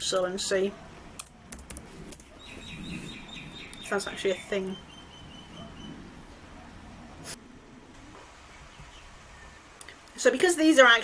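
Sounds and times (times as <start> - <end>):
faint high chirping: 2.3 - 6.8.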